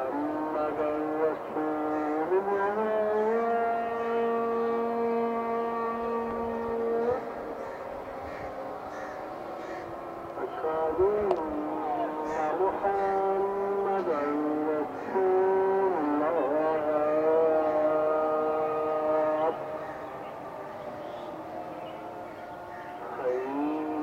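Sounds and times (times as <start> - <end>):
man chanting held notes: 0.0 - 24.0.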